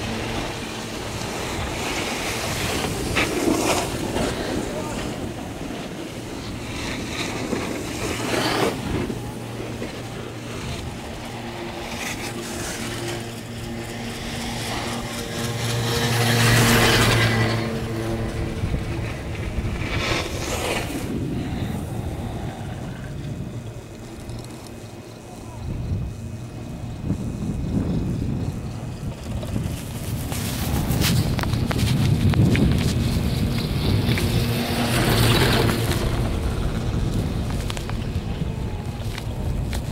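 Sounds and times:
lift haul rope hum: 0.0s - 39.9s
wind on microphone: 0.0s - 39.9s.

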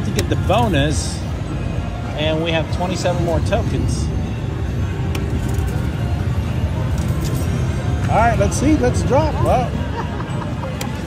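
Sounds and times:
low rumble of machines and crowd: 0.0s - 11.0s.

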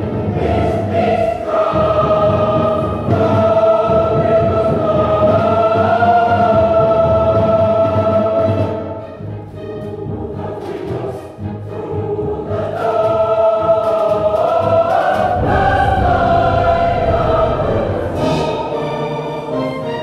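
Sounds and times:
choir singing with orchestra: 0.0s - 20.0s.

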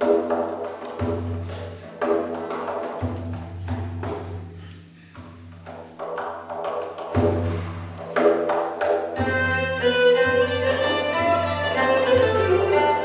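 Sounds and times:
lute: 0.0s - 13.0s
percussion strokes: 0.0s - 13.0s
bowed lyre: 9.0s - 13.0s
shruti box drone: 9.2s - 13.0s.

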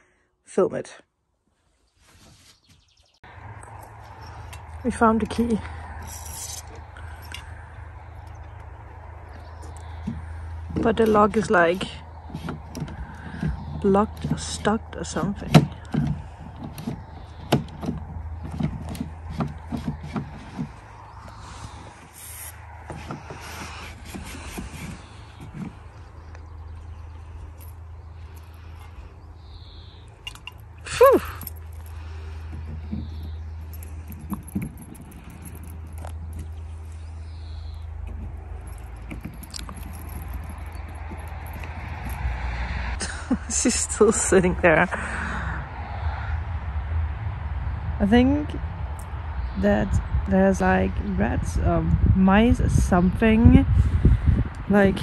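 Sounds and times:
key rattling in door lock: 33.2s - 36.6s, 38.0s - 42.3s.

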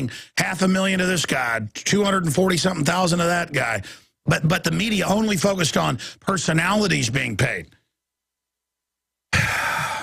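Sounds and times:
man breathing loudly: 9.4s - 10.0s.

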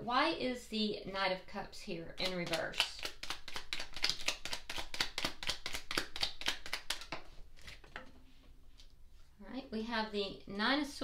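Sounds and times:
cards being shuffled: 2.2s - 7.9s.

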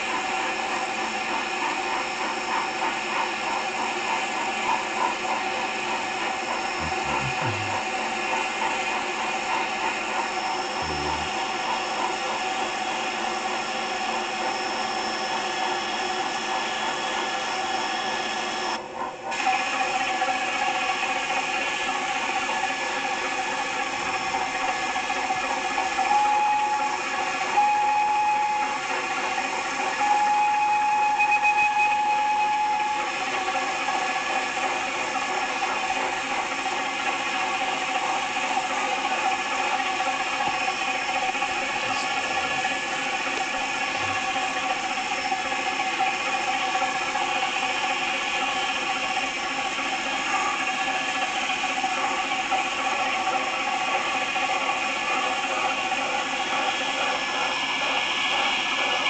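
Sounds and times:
toy train motor whirring: 6.2s - 7.9s, 9.8s - 12.2s, 19.4s - 59.0s
steady high tone: 6.6s - 7.9s, 10.6s - 11.9s.

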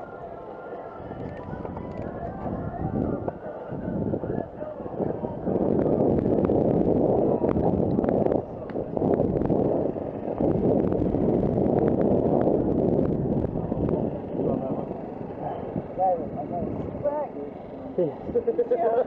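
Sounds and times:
wind and tyre rumble: 0.0s - 19.0s.

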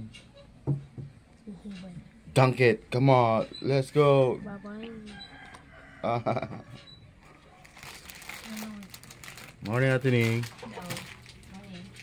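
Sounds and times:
plastic packet crinkling: 7.2s - 12.0s.

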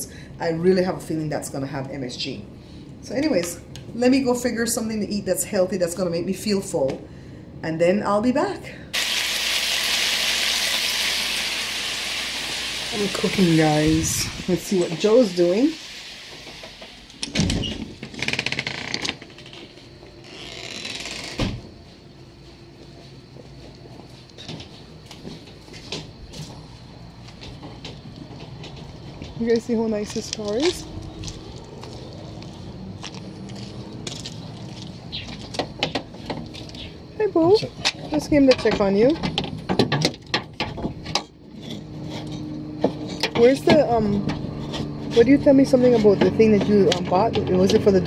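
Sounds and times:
door opening and shutting: 16.4s - 21.7s
light footsteps: 21.7s - 36.7s.

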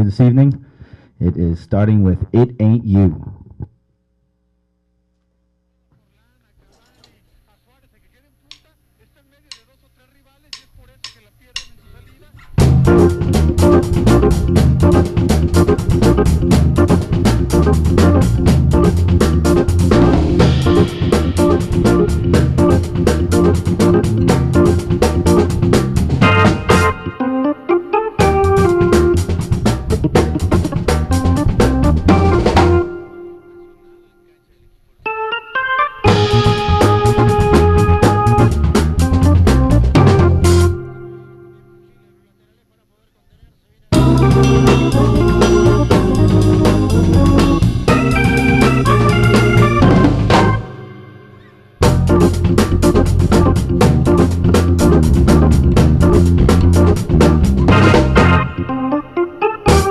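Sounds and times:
organ-like synthesizer keyboard: 7.7s - 59.9s
sharp count-in clicks: 8.5s - 8.7s, 9.5s - 9.8s, 10.5s - 11.8s
funky jazz band playing: 11.6s - 34.0s, 35.1s - 41.6s, 43.9s - 59.9s.

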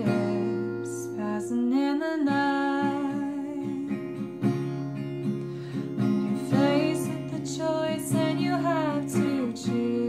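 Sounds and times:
fingerpicked acoustic guitar: 0.0s - 10.0s.

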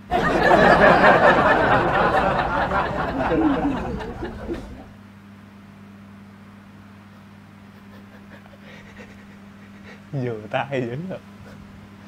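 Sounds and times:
breathy held-back laughter: 0.0s - 5.0s, 7.1s - 10.2s
steady low hum: 0.0s - 5.4s, 6.0s - 12.0s.

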